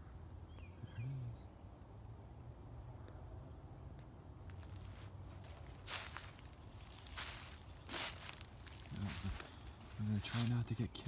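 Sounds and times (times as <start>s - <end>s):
footsteps crunching on dry leaves: 4.5s - 10.8s.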